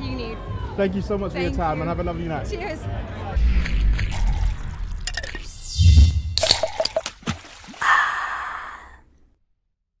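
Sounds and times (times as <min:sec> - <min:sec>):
breathy sigh-like sound effect: 0:07.8 - 0:09.1.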